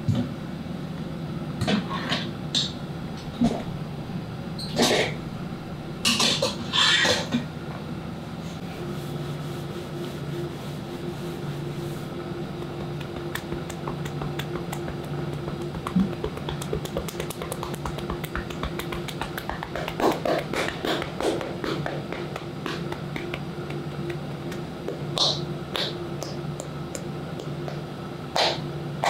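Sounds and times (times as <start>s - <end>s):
hands tapping on a back: 12.5s - 26.4s
hand slaps: 12.6s - 26.4s.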